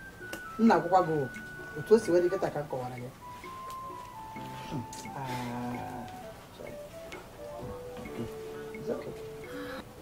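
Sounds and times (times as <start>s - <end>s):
film music with held notes: 0.0s - 10.0s
murmuring voice: 4.4s - 6.2s.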